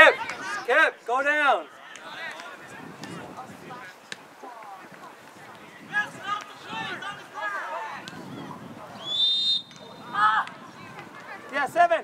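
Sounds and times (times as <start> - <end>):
voices shouting: 5.6 - 8.2, 8.8 - 11.6
referee's whistle blast: 9.0 - 10.1.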